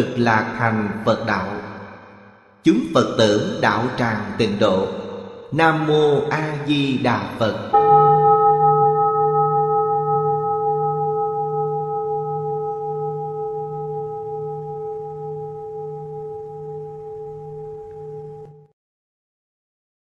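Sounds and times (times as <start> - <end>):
bowl bell ringing: 7.7 - 18.7.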